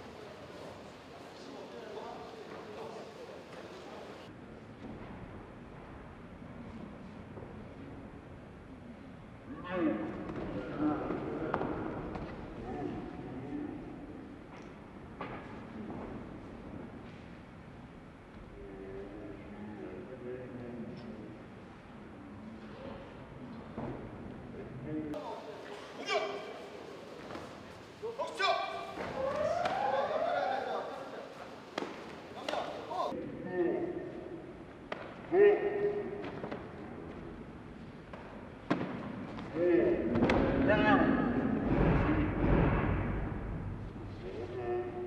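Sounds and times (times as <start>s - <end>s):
shouted calls echoing in hall: 25.1s - 36.4s
people shouting: 28.1s - 31.0s.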